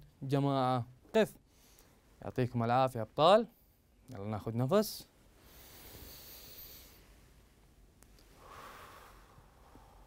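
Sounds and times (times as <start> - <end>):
man breathing in deeply: 5.4 - 7.1, 8.3 - 10.0.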